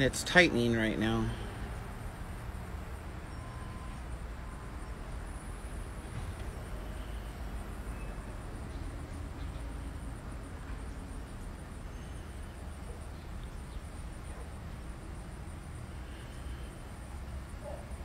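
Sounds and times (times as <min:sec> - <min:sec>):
insects chirping: 0:00.0 - 0:18.0.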